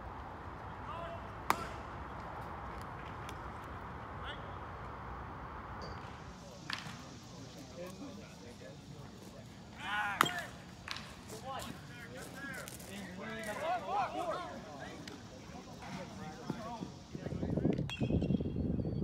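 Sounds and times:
baseball impact pop: 0:01.5 - 0:01.8.

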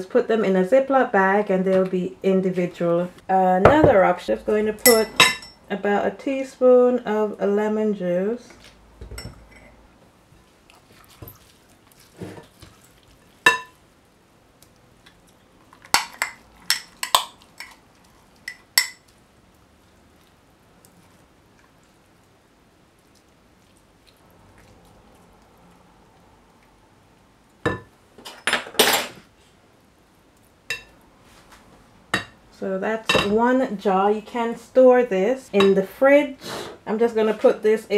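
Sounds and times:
spoon and jar clinking on glass bowl: 0:04.9 - 0:05.6.

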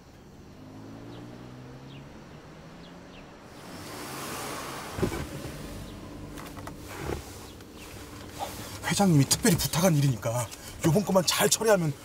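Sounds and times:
car passing: 0:00.0 - 0:11.2
car engine hum: 0:00.0 - 0:12.0
car door shutting: 0:04.2 - 0:08.6.

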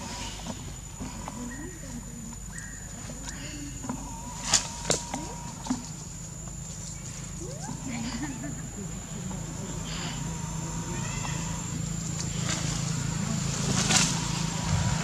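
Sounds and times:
steady high-pitched whine: 0:00.0 - 0:15.0
faint voices talking: 0:07.3 - 0:14.8.

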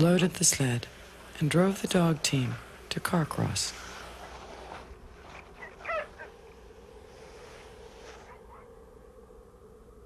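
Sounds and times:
faint steady hum: 0:00.0 - 0:10.0
sled dogs yelping and whining: 0:05.3 - 0:06.4.

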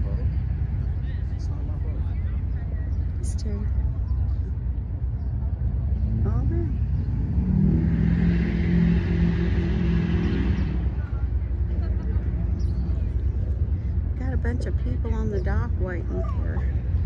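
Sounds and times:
constant low rumble: 0:00.0 - 0:17.0
engine running: 0:00.0 - 0:17.0.

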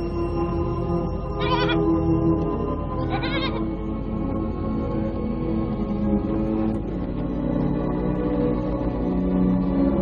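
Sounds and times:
background music with held tones: 0:00.0 - 0:10.0
goat bleating: 0:01.4 - 0:01.9, 0:03.0 - 0:03.7.

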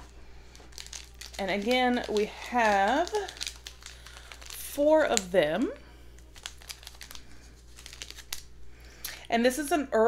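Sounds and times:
foil sachets crinkling: 0:00.0 - 0:09.1.

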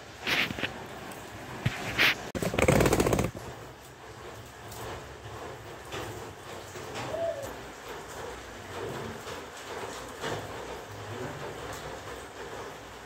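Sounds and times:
bird cooing: 0:06.9 - 0:07.7.

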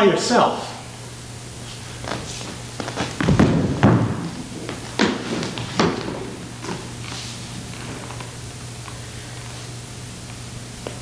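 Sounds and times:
low electrical hum: 0:00.0 - 0:11.0
thuds and knocks of scuffle: 0:02.0 - 0:07.3.

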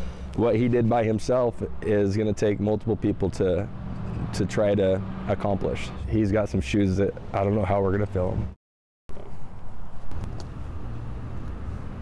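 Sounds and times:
passing car rumble: 0:00.0 - 0:08.6, 0:10.0 - 0:12.0.

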